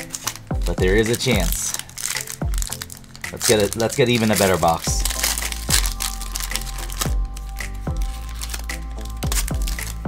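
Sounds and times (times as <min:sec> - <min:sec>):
music with deep beat: 0:00.0 - 0:03.6, 0:04.7 - 0:10.0
foil card pack crinkling: 0:00.0 - 0:10.0.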